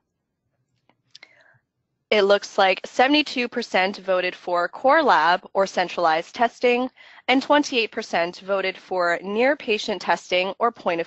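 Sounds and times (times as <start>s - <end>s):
faint breathy sound: 1.1s - 1.7s, 6.9s - 7.3s.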